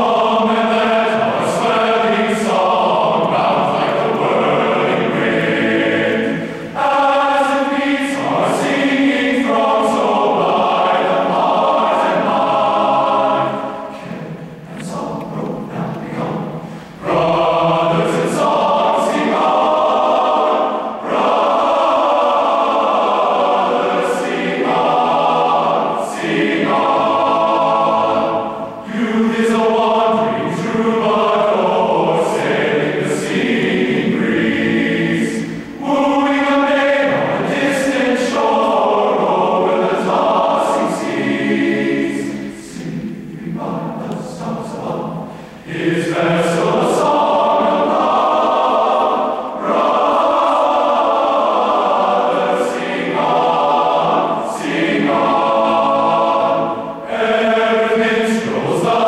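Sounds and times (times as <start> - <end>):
men's choir singing: 0.0 - 59.0.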